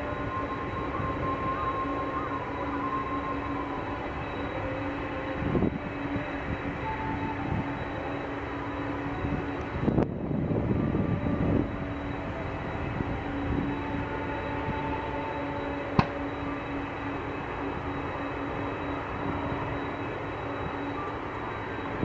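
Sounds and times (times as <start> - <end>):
jet engines running: 0.0 - 22.0.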